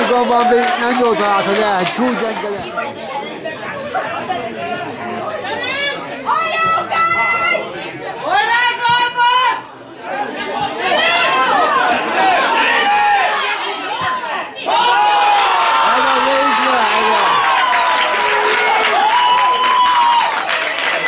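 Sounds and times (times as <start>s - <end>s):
overlapping chatter: 0.0s - 21.0s
long drawn-out shouts: 10.8s - 20.4s.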